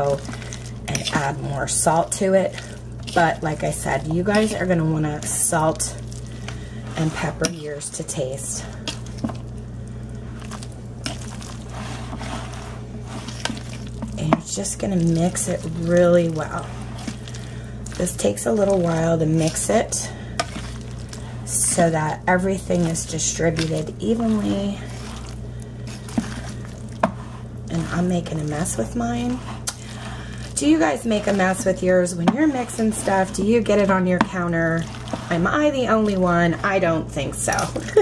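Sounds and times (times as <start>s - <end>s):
steady low hum: 0.0s - 38.0s
wet squishing of pasta salad: 0.0s - 38.0s.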